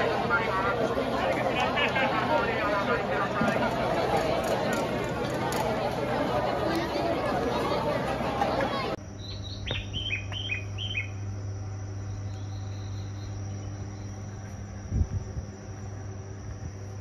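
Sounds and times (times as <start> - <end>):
low steady hum: 0.0 - 17.0
steady high whine: 0.0 - 17.0
bird-like chirps: 9.2 - 11.2, 12.0 - 14.4.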